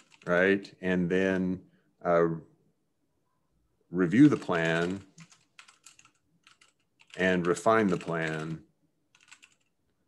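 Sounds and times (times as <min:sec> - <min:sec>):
keyboard typing: 0:00.0 - 0:00.4, 0:04.1 - 0:09.8.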